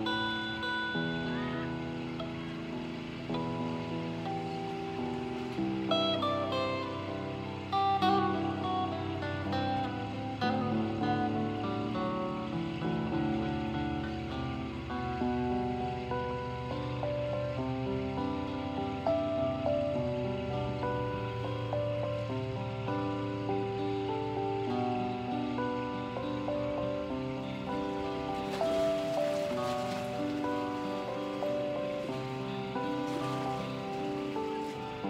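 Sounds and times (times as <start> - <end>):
acoustic guitar: 0.0 - 35.0
electronic keyboard chords: 0.0 - 35.0
soft steady hiss: 0.0 - 35.0.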